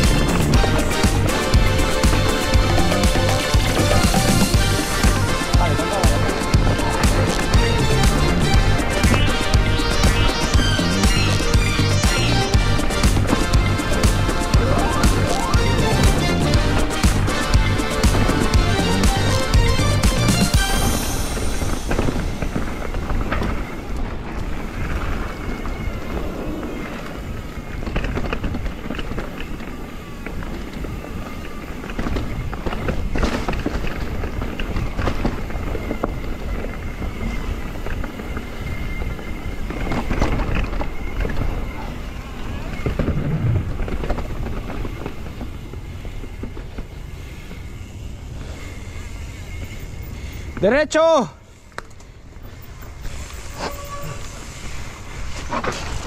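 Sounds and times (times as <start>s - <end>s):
music: 0.0s - 23.2s
bike knocking and rattling: 0.0s - 56.0s
bike tyre and ground noise: 0.0s - 56.0s
wind on microphone: 20.8s - 48.9s.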